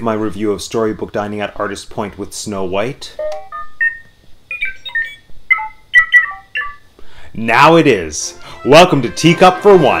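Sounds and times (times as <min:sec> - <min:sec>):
robot beeping and whistling: 0:03.5 - 0:06.9.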